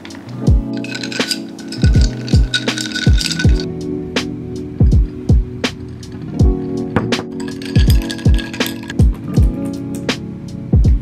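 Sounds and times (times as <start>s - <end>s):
ice cubes clinking in glass: 0.0s - 3.7s, 7.0s - 9.0s
music with deep beat: 0.0s - 11.0s.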